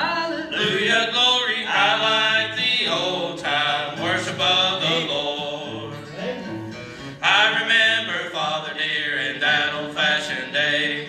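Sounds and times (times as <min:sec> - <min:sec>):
men singing gospel song: 0:00.0 - 0:11.0.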